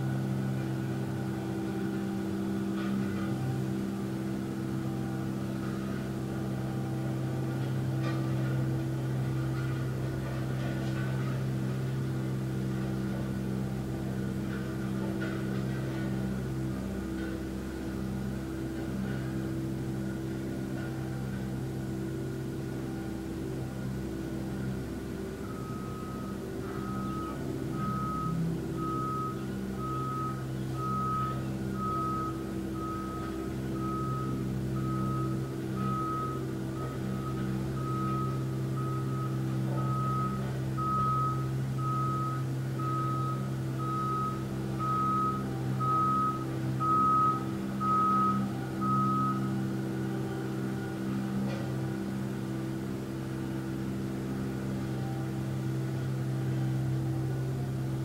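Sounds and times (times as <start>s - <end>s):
low engine drone: 0.0s - 58.0s
truck reversing alarm beeping: 0.0s - 58.0s.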